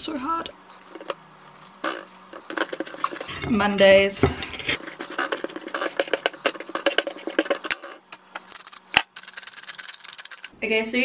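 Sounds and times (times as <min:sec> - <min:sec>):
fine fast grating: 0:00.7 - 0:03.3, 0:04.6 - 0:10.5
knife scraping toast: 0:04.7 - 0:08.0.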